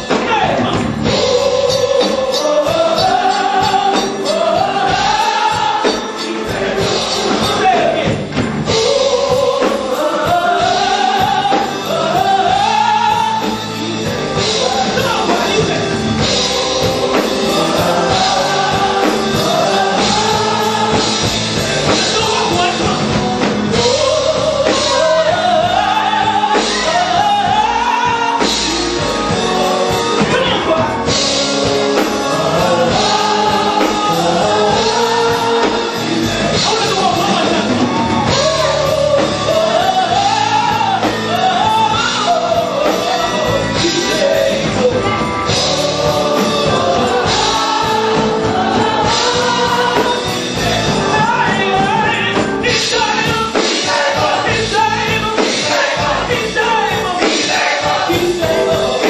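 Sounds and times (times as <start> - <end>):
band accompaniment: 0.0 - 59.0
drum kit beat: 0.0 - 59.0
gospel choir singing: 0.0 - 59.0.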